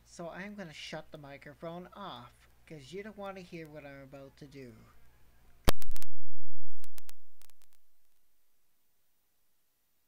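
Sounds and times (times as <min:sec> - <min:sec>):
low electrical buzz: 0:00.0 - 0:10.0
microphone clicks and pops: 0:05.6 - 0:08.3.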